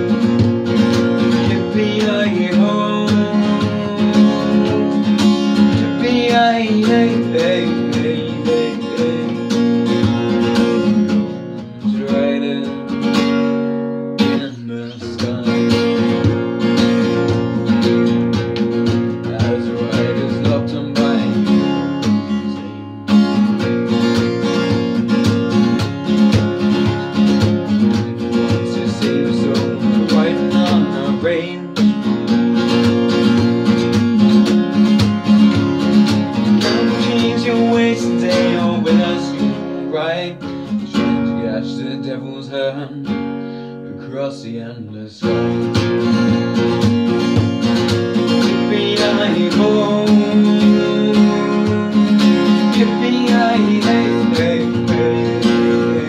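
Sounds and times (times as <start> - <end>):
acoustic guitar strumming chords: 0.0 - 56.0.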